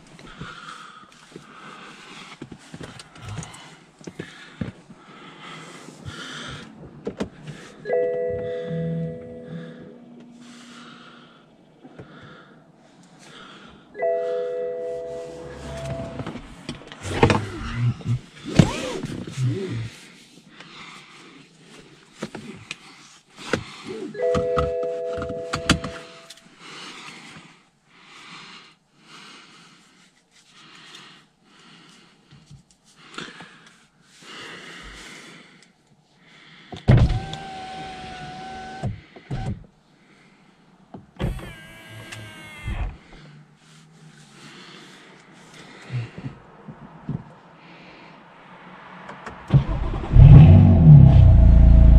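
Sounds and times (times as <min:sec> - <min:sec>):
seat belt webbing rubbing and clicking: 0:15.0 - 0:20.4
seat belt retractor whir: 0:15.1 - 0:19.7, 0:36.9 - 0:39.7, 0:41.2 - 0:43.3, 0:49.5 - 0:51.9
car window motor whine: 0:15.4 - 0:17.9, 0:41.2 - 0:43.2.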